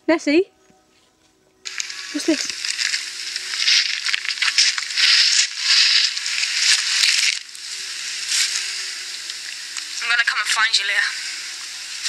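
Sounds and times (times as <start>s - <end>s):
crackling noise through small speaker: 1.6s - 12.0s.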